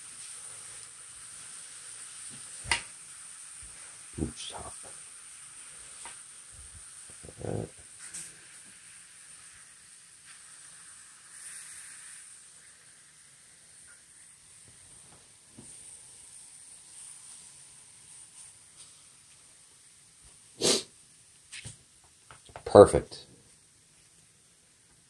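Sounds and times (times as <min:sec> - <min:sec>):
meat sizzling in a pan: 0:00.0 - 0:22.3.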